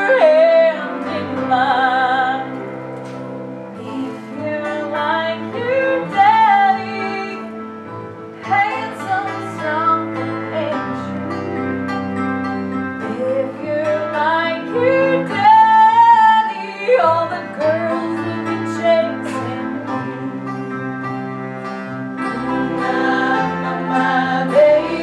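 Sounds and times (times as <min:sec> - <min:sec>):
woman singing: 0:00.0 - 0:02.7, 0:03.7 - 0:07.6, 0:08.4 - 0:11.6, 0:13.0 - 0:20.8, 0:22.2 - 0:25.0
live band sustained chords: 0:00.0 - 0:25.0.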